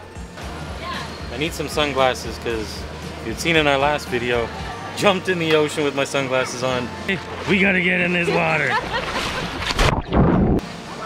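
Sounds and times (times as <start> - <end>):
seawater splashing on microphone: 7.1 - 10.6.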